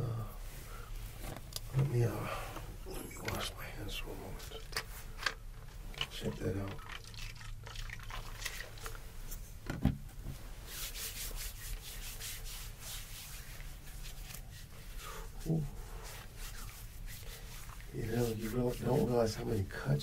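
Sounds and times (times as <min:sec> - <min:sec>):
hands rubbing together: 0:10.4 - 0:19.6.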